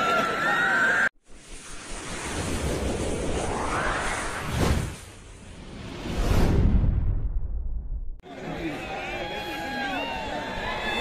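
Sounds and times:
crowd noise: 0:00.0 - 0:01.1, 0:08.2 - 0:11.0
rushing noise with rising tone: 0:01.2 - 0:08.2
whoosh: 0:01.2 - 0:08.2.

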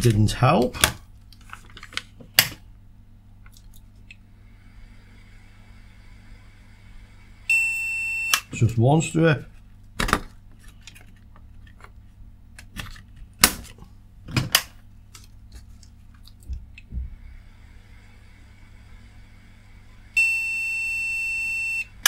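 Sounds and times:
long steady beep: 0:07.5 - 0:08.5, 0:20.2 - 0:22.0.

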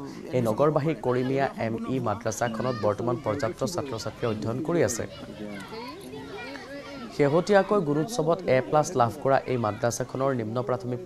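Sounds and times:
children chattering: 0:00.0 - 0:11.0
person speaking: 0:00.0 - 0:11.0.

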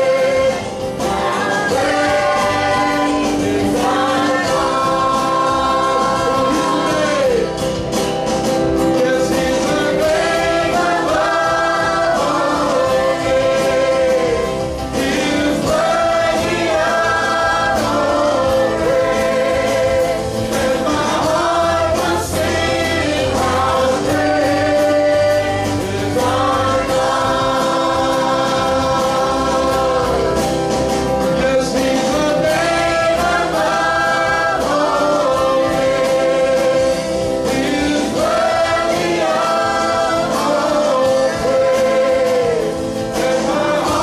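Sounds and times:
congregation singing: 0:00.0 - 0:44.0
worship band playing: 0:00.0 - 0:44.0.

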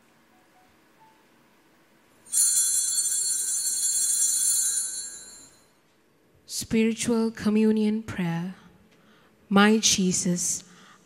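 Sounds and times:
small bells ringing: 0:02.3 - 0:05.8.

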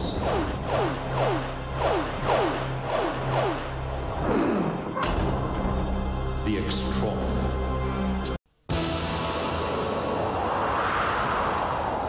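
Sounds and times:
low steady drone: 0:00.0 - 0:06.5.

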